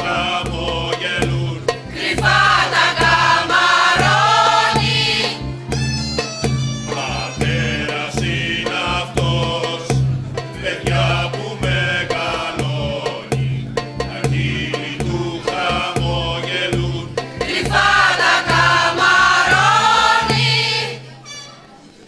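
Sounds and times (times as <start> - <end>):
mixed choir singing in parts: 0.0 - 5.6, 6.9 - 21.2
steady percussion beat: 0.0 - 21.1.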